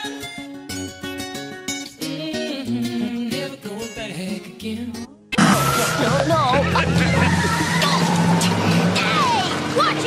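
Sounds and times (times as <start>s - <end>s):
cartoon music: 5.4s - 8.5s
sliding vocal cries: 5.4s - 9.4s.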